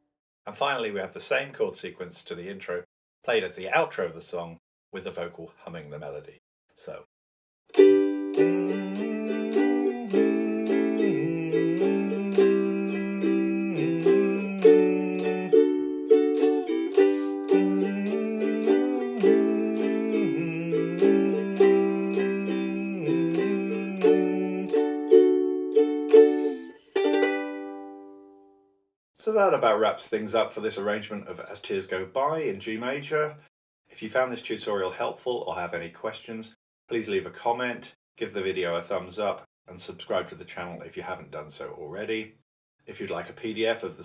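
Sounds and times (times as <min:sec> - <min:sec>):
ukulele strumming chords: 0:07.8 - 0:28.4
man humming: 0:08.4 - 0:15.7, 0:16.6 - 0:25.1.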